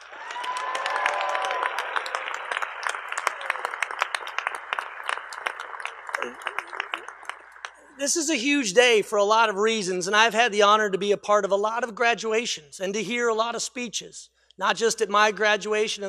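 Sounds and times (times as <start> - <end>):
audience applauding: 0.0 - 8.0
people cheering: 0.0 - 8.1.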